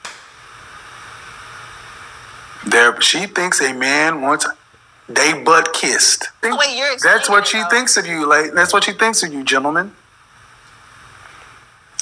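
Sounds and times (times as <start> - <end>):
recording hiss: 0.0 - 12.0
faint low hum: 0.2 - 12.0.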